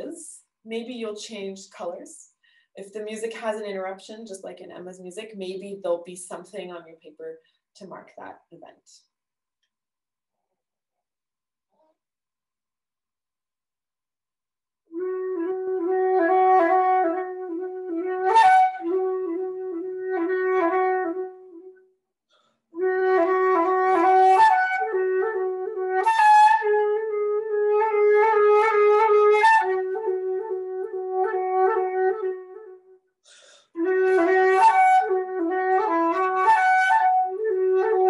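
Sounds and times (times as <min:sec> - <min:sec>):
solo flute playing: 0:14.9 - 0:21.8, 0:22.8 - 0:33.0, 0:33.8 - 0:38.0.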